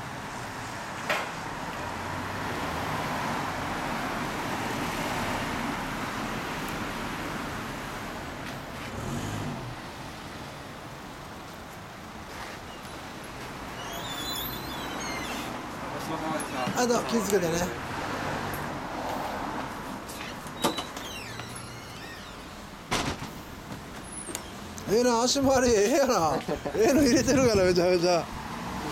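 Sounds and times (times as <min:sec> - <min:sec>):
road traffic noise: 0:00.0 - 0:28.9.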